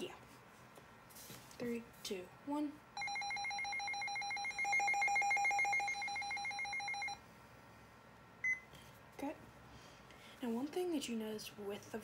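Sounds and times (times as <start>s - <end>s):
pulsing electronic alarm tone: 3.0s - 7.2s.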